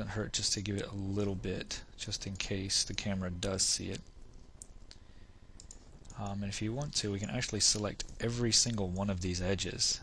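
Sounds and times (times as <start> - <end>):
low room noise: 0.0 - 10.0
computer mouse clicks: 5.6 - 6.4.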